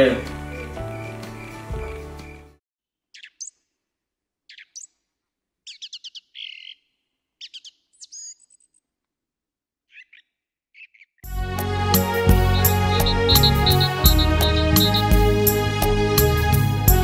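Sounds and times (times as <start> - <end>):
songbirds chirping: 0.0 - 3.7, 4.5 - 8.9, 9.9 - 15.9.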